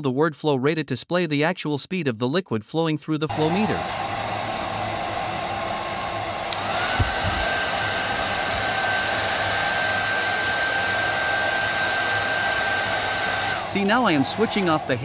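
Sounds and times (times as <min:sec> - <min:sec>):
hair dryer running: 0:03.3 - 0:15.0
soft thump: 0:07.0 - 0:07.5.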